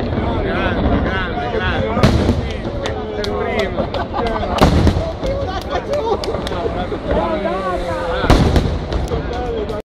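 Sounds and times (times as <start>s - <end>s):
fireworks bangs: 0.0s - 9.8s
people talking and calling out: 0.0s - 9.8s.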